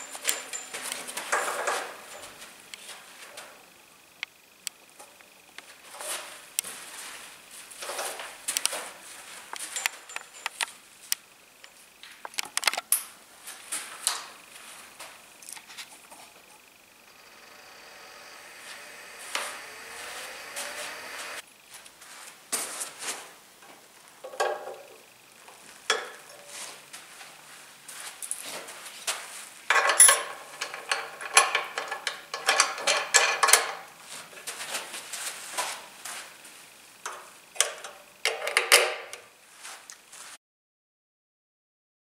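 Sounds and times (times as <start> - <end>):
faint steady hum: 0.0 - 40.3.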